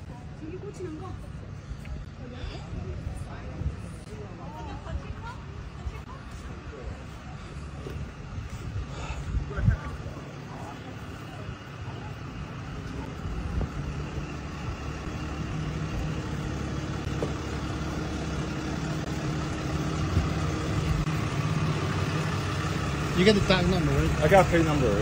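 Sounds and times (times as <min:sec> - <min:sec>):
vehicle engine idling: 0:00.0 - 0:25.0.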